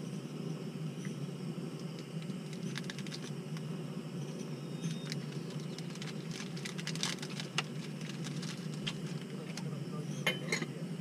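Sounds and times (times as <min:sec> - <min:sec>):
steady low hum: 0:00.0 - 0:11.0
small object clicks and rustles: 0:01.9 - 0:03.6, 0:04.9 - 0:09.7.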